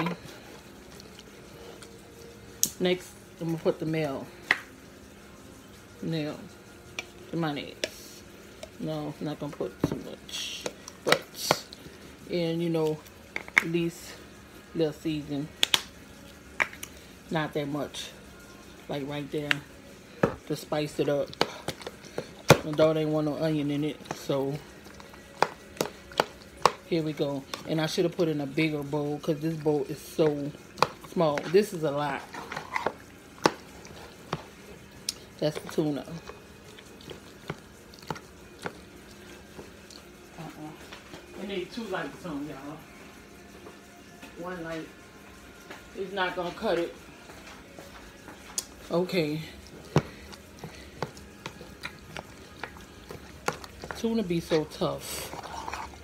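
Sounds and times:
fork mashing food in a bowl: 21.2 - 28.8, 29.5 - 40.1, 48.5 - 56.0.

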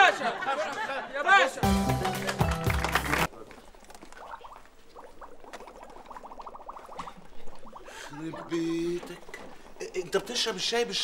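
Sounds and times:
music: 1.6 - 3.3.

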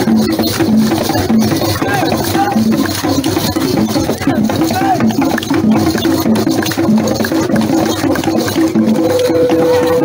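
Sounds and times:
traditional dance music: 0.0 - 10.0.

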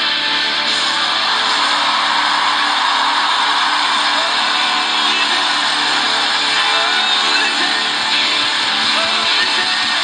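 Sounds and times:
worship band music: 0.0 - 10.0.

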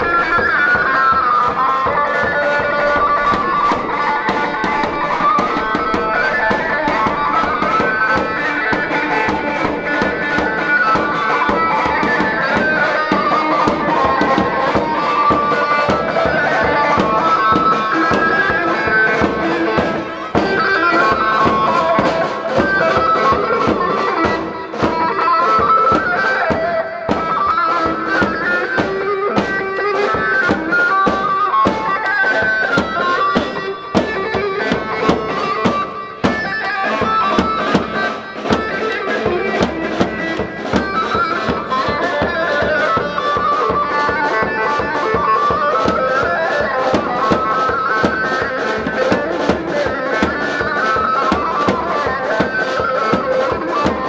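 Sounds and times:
fast drum beat: 0.0 - 54.0
reedy shawm melody: 0.0 - 54.0.

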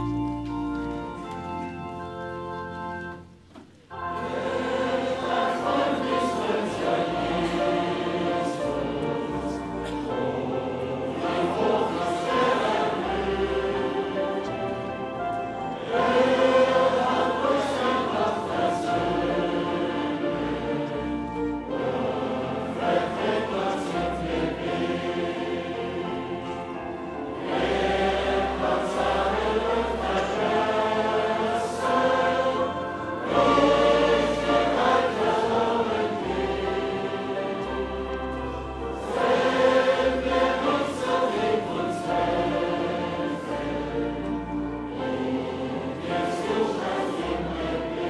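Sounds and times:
congregation singing a hymn: 0.0 - 48.0
low accompanying notes: 0.0 - 48.0.

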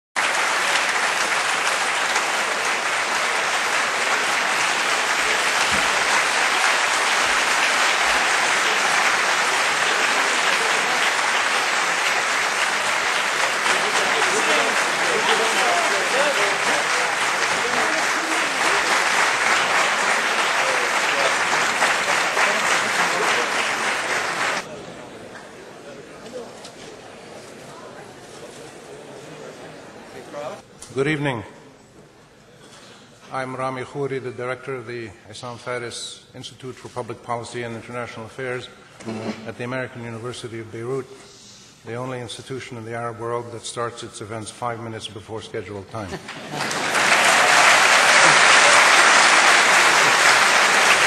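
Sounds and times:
audience applauding: 0.2 - 24.8, 46.1 - 51.0.

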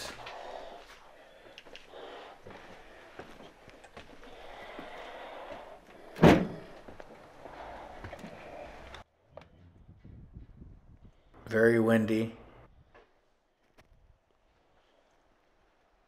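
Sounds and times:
door banging open: 6.2 - 6.7.

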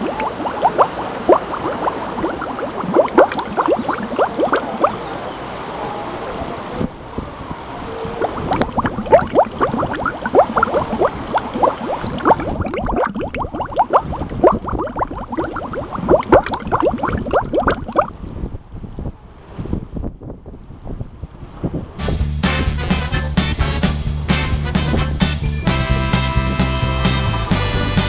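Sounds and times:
water gurgling and splashing: 0.0 - 5.0, 8.2 - 18.1.

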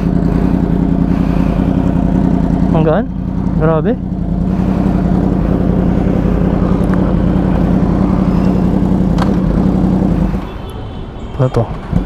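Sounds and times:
motorcycle engine idling: 0.0 - 10.7.

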